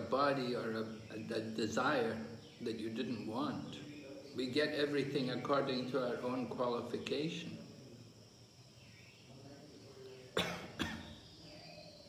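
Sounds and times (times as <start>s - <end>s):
person coughing: 10.4s - 11.1s.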